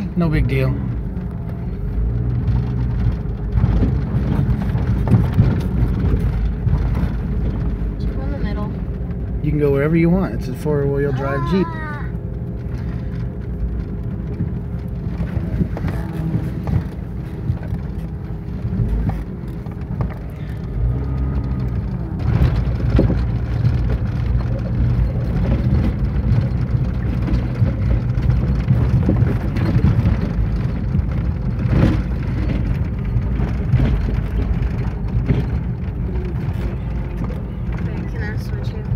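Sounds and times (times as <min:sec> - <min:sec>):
vehicle engine and road rumble: 0:00.0 - 0:38.9
knocks from bumps: 0:02.2 - 0:07.8, 0:13.4 - 0:38.9.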